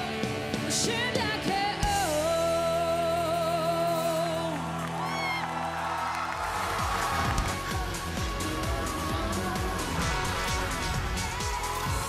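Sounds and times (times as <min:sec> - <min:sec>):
woman singing into microphone: 0:00.0 - 0:04.6
backing track: 0:00.0 - 0:12.0
audience cheering: 0:04.4 - 0:12.0.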